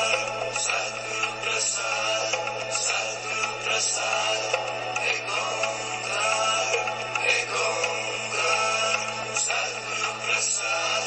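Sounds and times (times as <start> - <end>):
sung vocals in long notes: 0.0 - 11.0.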